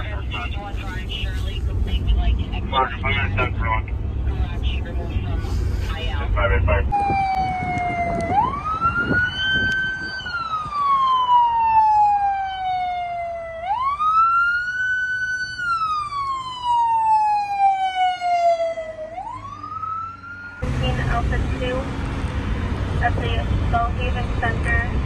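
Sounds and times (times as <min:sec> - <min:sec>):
low road noise: 0:00.0 - 0:25.0
siren wailing: 0:06.9 - 0:21.6.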